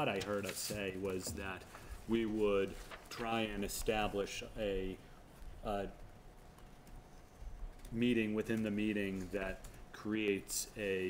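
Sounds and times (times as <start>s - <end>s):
man speaking: 0.0s - 5.0s, 5.6s - 6.0s, 7.9s - 11.0s
low room hum: 0.0s - 11.0s.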